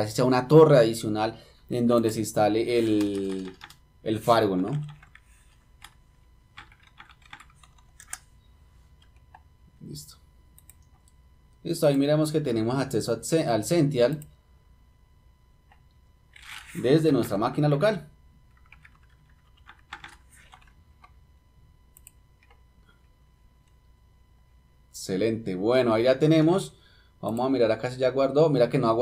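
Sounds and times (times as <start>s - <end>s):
typing on computer keyboard: 3.0s - 3.8s, 4.7s - 6.0s, 6.6s - 8.2s, 18.6s - 20.7s.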